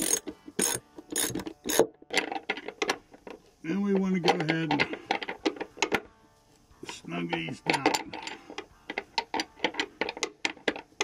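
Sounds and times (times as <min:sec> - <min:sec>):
socket ratchet clicking: 0:00.0 - 0:03.0.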